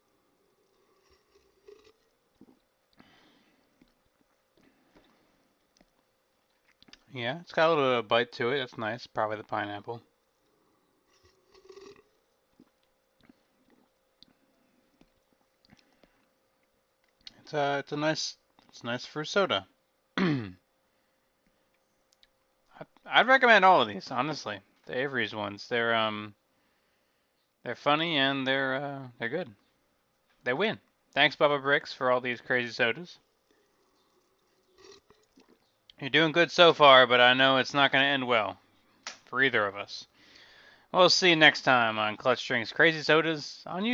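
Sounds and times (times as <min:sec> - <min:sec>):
faint swallowing: 0:00.4 - 0:07.1, 0:33.3 - 0:35.8.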